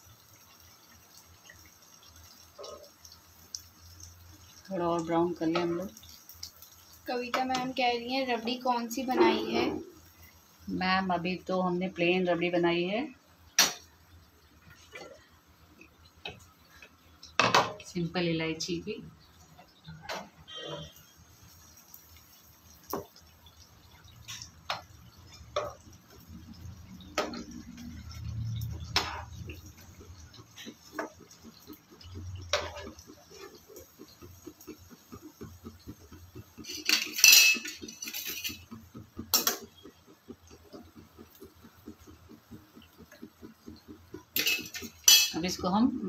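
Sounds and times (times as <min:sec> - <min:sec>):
metal skimmer clinking on pan: 0:36.6 - 0:38.7, 0:44.3 - 0:45.6.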